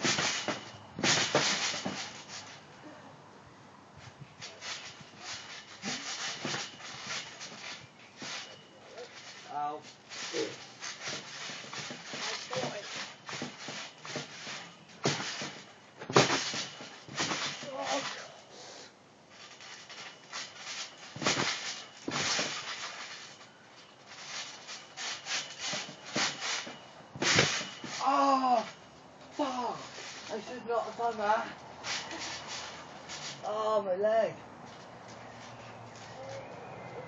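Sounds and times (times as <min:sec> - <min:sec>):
thumps on trampoline mat: 0:00.0 - 0:02.4, 0:04.4 - 0:08.5, 0:10.1 - 0:18.2, 0:19.6 - 0:23.4, 0:24.1 - 0:28.0.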